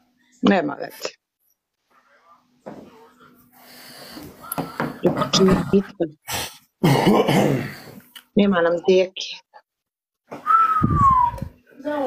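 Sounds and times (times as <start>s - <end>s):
person clearing throat: 5.0s - 8.0s.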